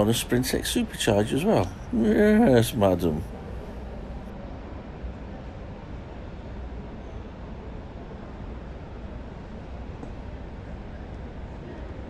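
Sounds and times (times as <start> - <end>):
hall low rumble and hiss: 0.0 - 12.0.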